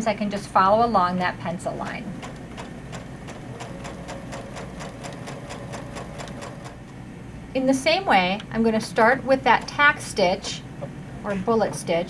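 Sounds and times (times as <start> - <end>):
faint motor hum: 0.0 - 12.0
sewing machine needle strokes: 2.1 - 6.9.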